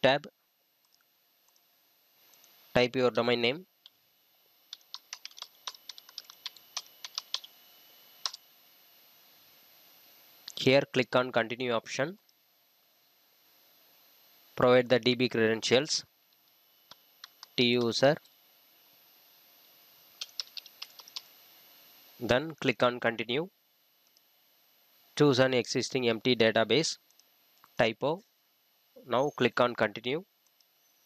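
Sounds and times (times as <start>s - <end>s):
computer keyboard typing: 4.7s - 7.6s, 8.2s - 8.4s, 16.9s - 18.0s, 20.2s - 21.3s.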